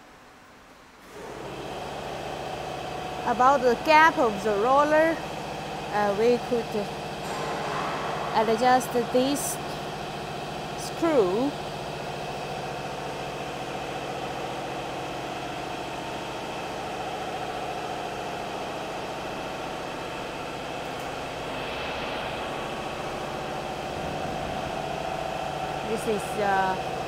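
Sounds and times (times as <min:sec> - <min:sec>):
machinery humming: 0:01.0 - 0:27.0.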